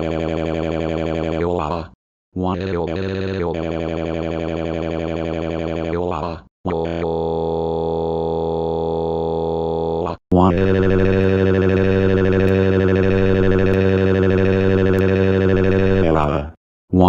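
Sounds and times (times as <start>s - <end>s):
robotic synthesized voice wailing: 0.0s - 8.7s, 9.4s - 17.0s.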